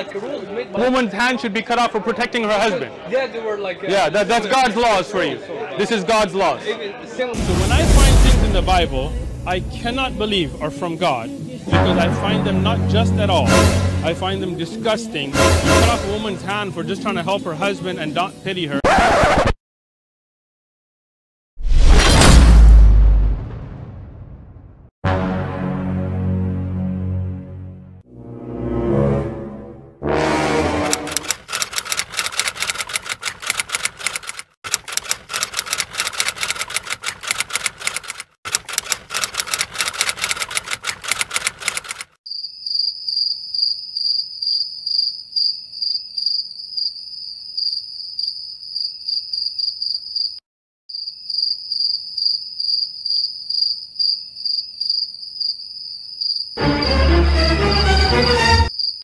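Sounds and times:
loud deep sound: 0:07.4 - 0:10.6
rapid typewriter-like clicking: 0:31.0 - 0:42.2
cricket chirping: 0:42.3 - 0:57.0, 0:57.6 - 0:59.0.

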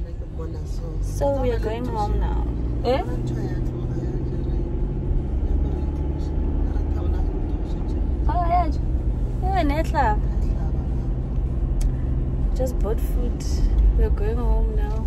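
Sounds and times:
car engine and tyres rumbling: 0:00.0 - 0:15.0.

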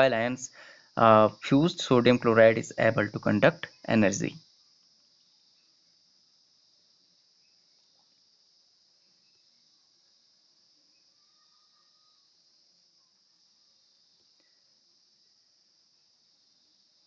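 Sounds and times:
faint high-pitched hiss: 0:00.0 - 0:17.0.

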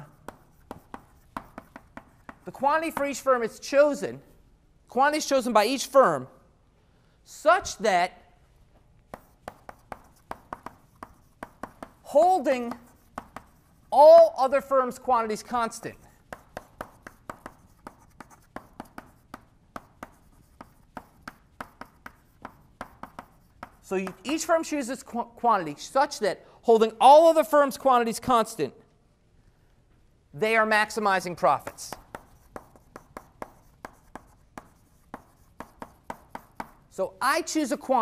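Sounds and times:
chalk writing on blackboard: 0:00.0 - 0:03.3, 0:09.1 - 0:14.0, 0:14.9 - 0:24.8, 0:31.4 - 0:37.0.

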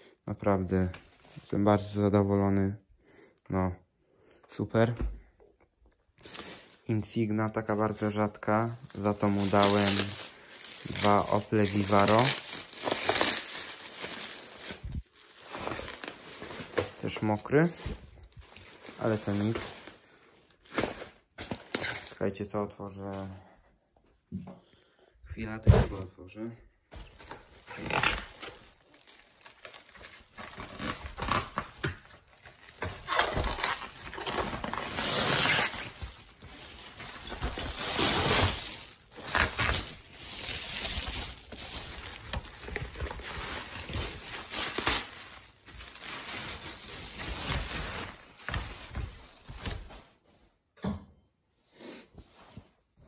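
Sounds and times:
plastic bag and bubble wrap crinkling: 0:00.6 - 0:02.2, 0:06.0 - 0:23.5, 0:26.9 - 0:49.9.

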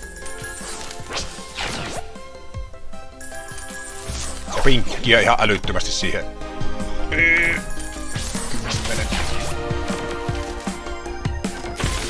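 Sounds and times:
game background music: 0:00.0 - 0:12.0.

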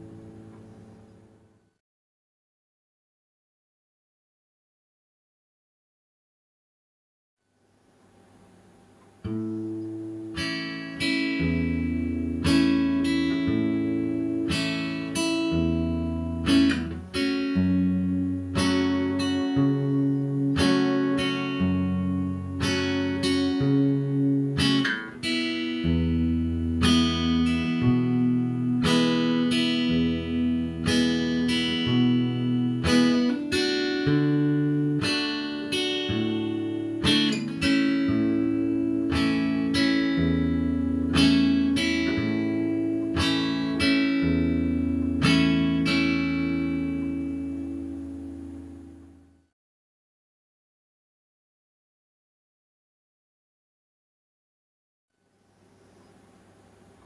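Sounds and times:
acoustic guitar strumming: 0:09.0 - 0:49.3.

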